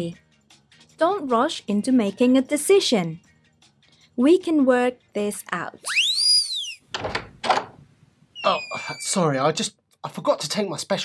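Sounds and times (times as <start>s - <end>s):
whistle-like sweeping sound effect: 5.8s - 6.9s
door opening and closing: 6.9s - 9.4s.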